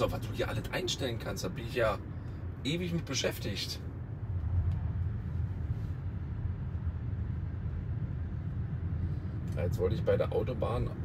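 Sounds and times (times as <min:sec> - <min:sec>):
road and tyre rumble: 0:00.0 - 0:11.0.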